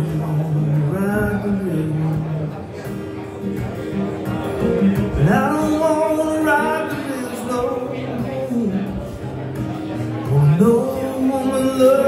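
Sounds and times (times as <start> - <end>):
man singing: 0.0 - 2.8, 4.9 - 12.0
acoustic guitar: 0.0 - 12.0.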